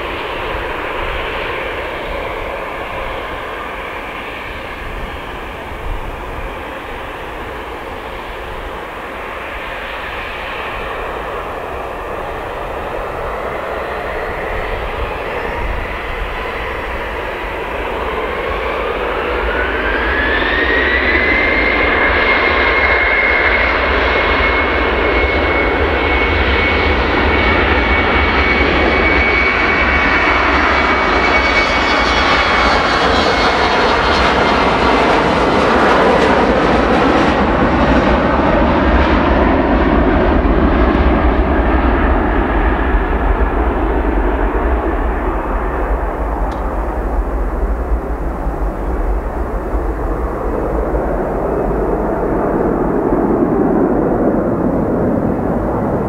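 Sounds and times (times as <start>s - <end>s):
jet engine roar: 0.0s - 56.0s
jet engine whine: 0.0s - 56.0s.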